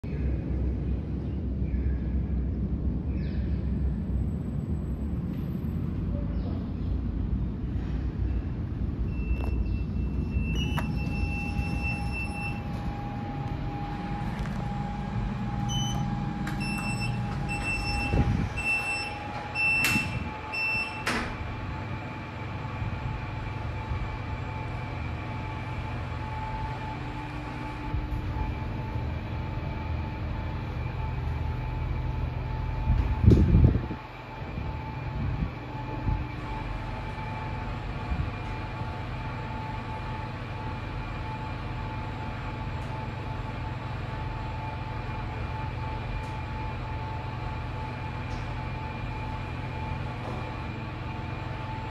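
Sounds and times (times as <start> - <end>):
steady high whine of lift: 0.0 - 51.9
short electronic beeps: 9.1 - 12.7, 15.7 - 21.0
lift doors sliding with knocks: 14.2 - 21.6, 49.8 - 51.5.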